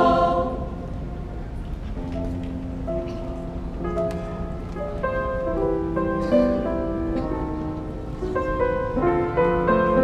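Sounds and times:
choir holding a chord: 0.0s - 1.2s.

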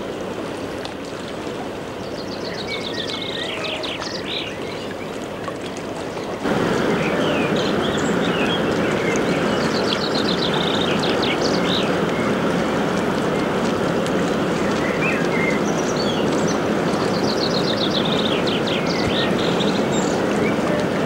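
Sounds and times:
ship engine and churning water: 0.0s - 21.0s.

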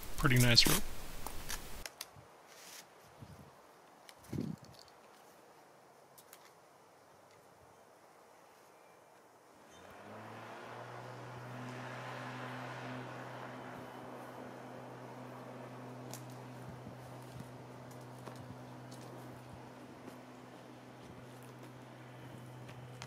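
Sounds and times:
low engine hum: 9.7s - 23.0s.

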